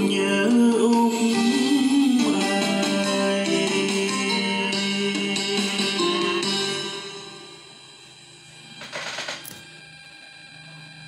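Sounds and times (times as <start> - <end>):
song music: 0.0 - 8.2.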